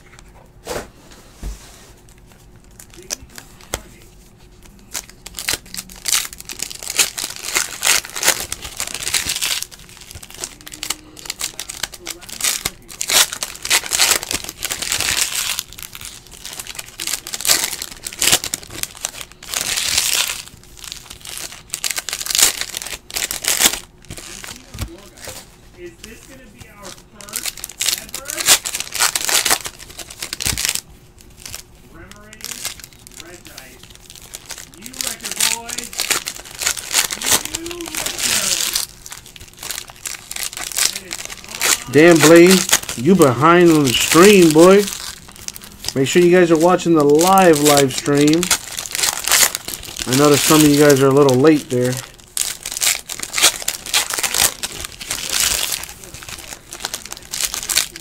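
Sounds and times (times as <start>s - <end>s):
foil wrappers crinkling: 2.0s - 58.0s.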